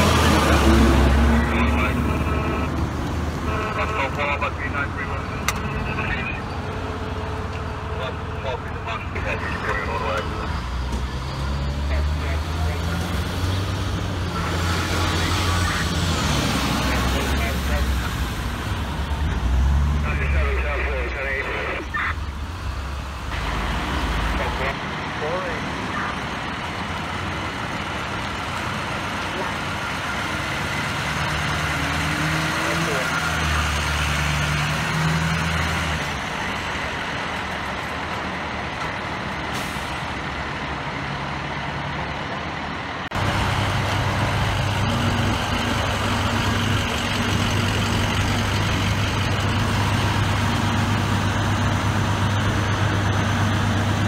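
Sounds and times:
heavy diesel engines running: 0.0 - 54.0
street traffic: 0.0 - 54.0
truck engine idling: 34.8 - 54.0.

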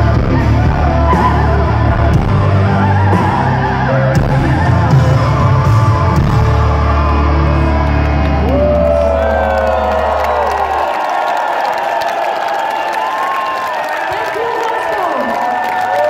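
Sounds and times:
crowd cheering and whooping: 0.0 - 16.0.

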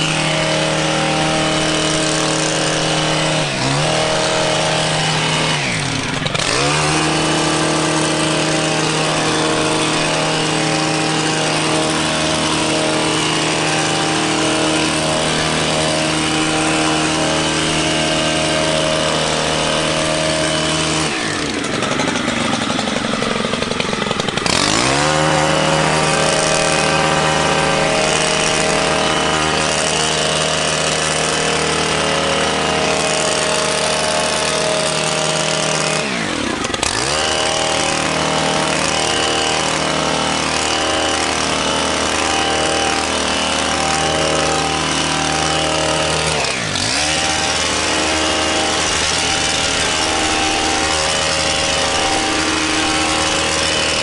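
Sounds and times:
hedge trimmer engine revving: 0.0 - 54.0.

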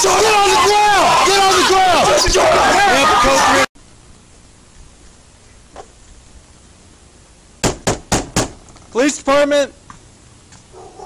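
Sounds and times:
low background hiss: 3.8 - 11.0.

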